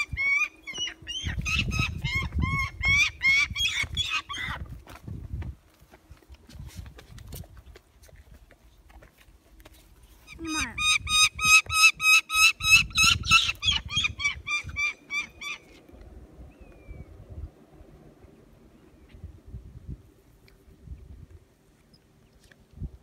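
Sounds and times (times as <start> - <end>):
bird of prey calling: 0.0 - 4.6, 10.3 - 15.8
handling and wind noise: 0.0 - 12.0, 19.0 - 23.0.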